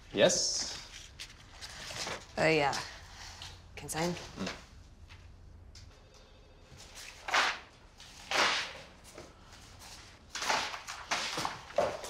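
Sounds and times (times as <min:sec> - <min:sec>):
paper pages flipping: 0:00.9 - 0:02.3.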